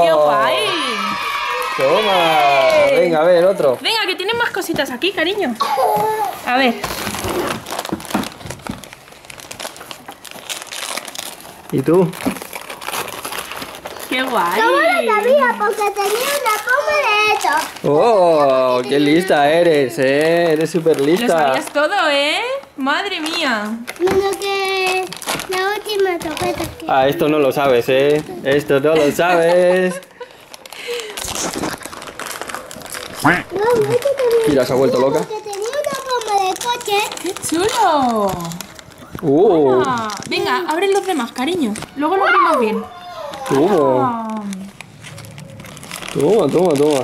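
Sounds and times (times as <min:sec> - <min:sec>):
wrapping paper rustling: 0:00.0 - 0:47.0.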